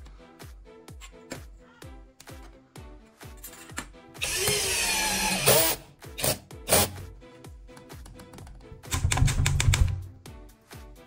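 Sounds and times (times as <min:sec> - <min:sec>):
background music: 0:00.0 - 0:11.0
electric screwdriver whine: 0:04.2 - 0:06.9.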